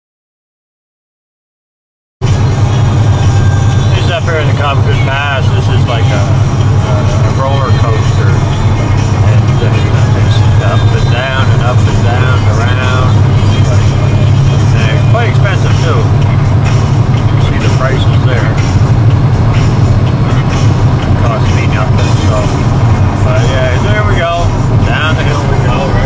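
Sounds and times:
vehicle engine and tyres droning: 0:02.2 - 0:26.0
person speaking: 0:03.9 - 0:16.2, 0:21.2 - 0:26.0.

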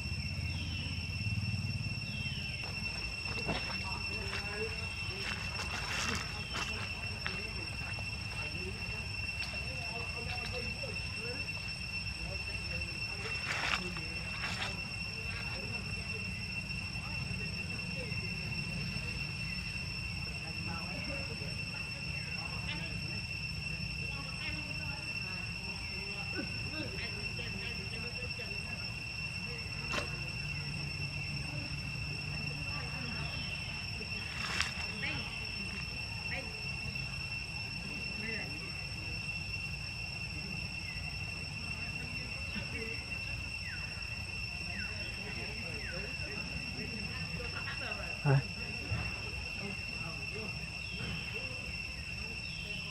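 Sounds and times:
faint chirps: 0:00.0 - 0:52.9
high-pitched whine: 0:00.0 - 0:52.9.

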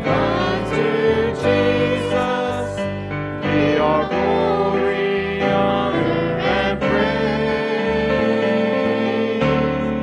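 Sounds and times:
keyboard: 0:00.0 - 0:10.0
women singing a hymn: 0:00.0 - 0:10.0.

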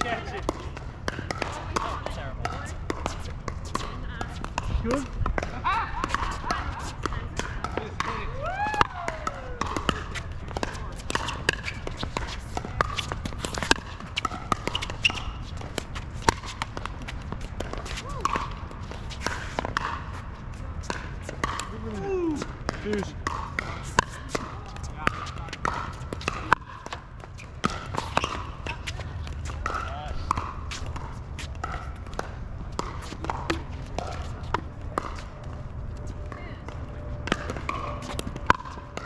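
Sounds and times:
ball bouncing on hard court: 0:00.0 - 0:39.0.

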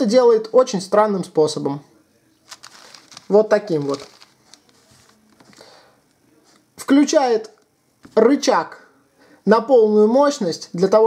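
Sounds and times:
puzzle cube scrape: 0:02.5 - 0:05.7.

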